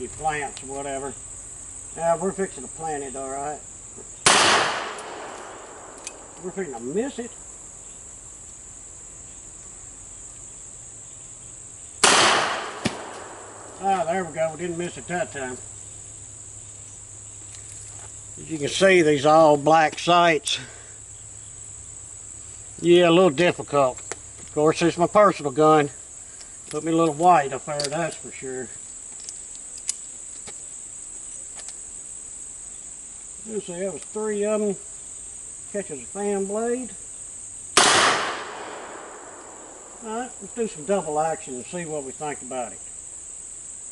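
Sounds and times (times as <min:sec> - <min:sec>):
insects chirping: 0:00.0 - 0:43.9
revolver gunshot: 0:04.2 - 0:06.3, 0:12.0 - 0:13.8, 0:37.8 - 0:40.0.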